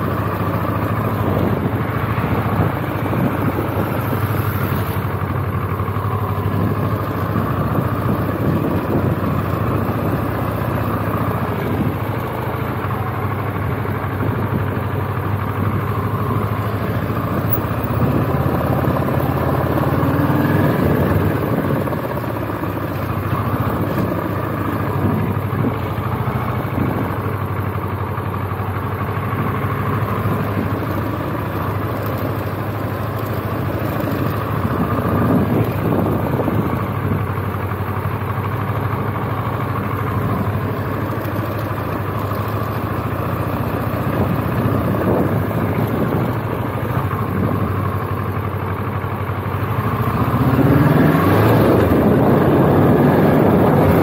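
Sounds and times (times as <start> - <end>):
motorcycle engine revving: 0.0 - 27.6, 49.6 - 54.0.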